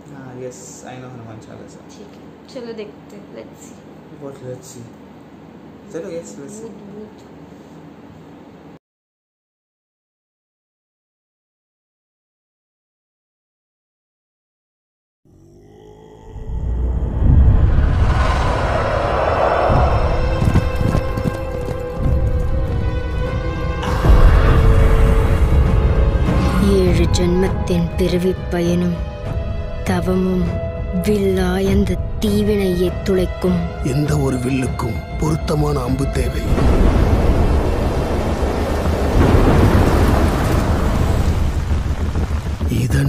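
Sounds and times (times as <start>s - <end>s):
ominous horror music: 15.3s - 40.3s
thunder rumbling: 16.7s - 27.9s, 36.4s - 43.0s
whoosh: 16.8s - 21.2s
heavy rain: 36.5s - 43.0s.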